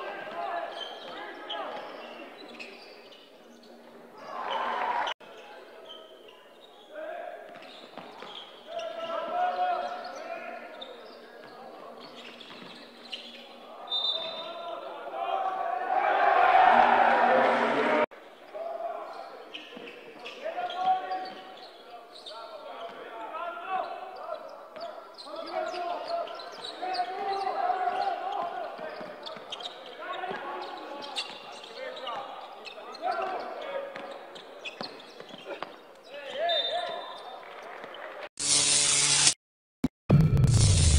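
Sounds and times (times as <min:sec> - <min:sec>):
shoe squeaks and knocks: 0:00.7 - 0:03.8, 0:07.5 - 0:09.2, 0:09.8 - 0:14.7, 0:24.2 - 0:37.3
sudden loud burst: 0:40.1 - 0:40.9.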